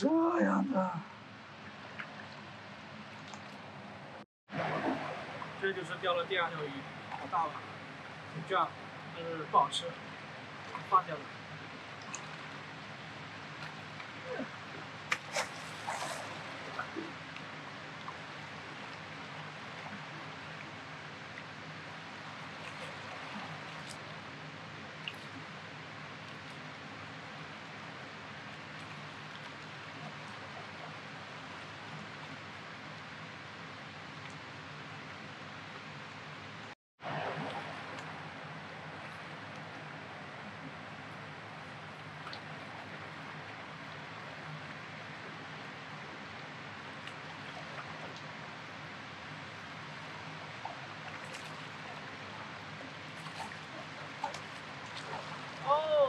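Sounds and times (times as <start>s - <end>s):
river current rushing: 3.6s - 23.8s.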